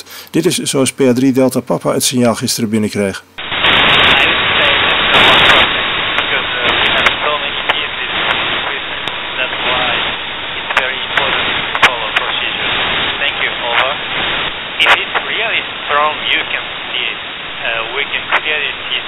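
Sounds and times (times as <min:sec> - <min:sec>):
radio receiver noise: 0:03.3 - 0:19.0
weak voice over radio: 0:03.9 - 0:14.0, 0:14.8 - 0:19.0.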